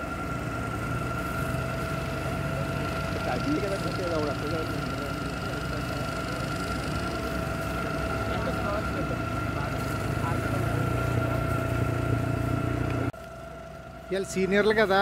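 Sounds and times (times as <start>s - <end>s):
vehicle engine idling: 0.0s - 15.0s
people talking: 2.2s - 11.9s, 14.1s - 15.0s.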